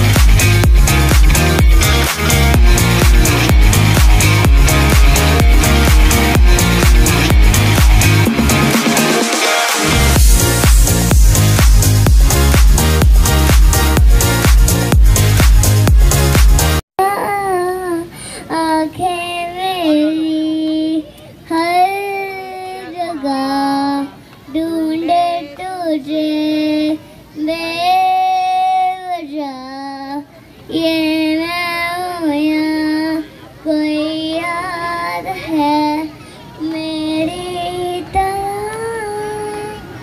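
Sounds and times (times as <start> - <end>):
boy singing into a microphone: 17.0 - 40.0.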